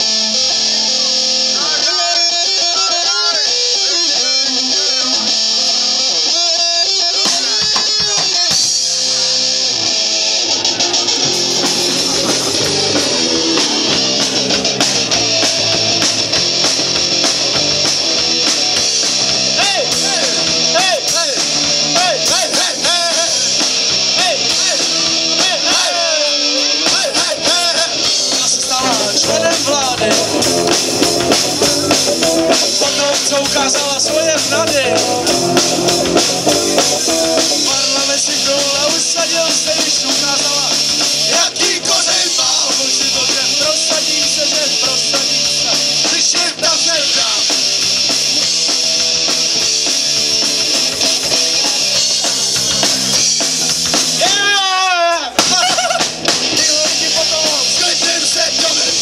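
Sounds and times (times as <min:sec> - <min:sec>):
drum kit: 0:00.0 - 0:59.0
electric guitars: 0:00.0 - 0:59.0.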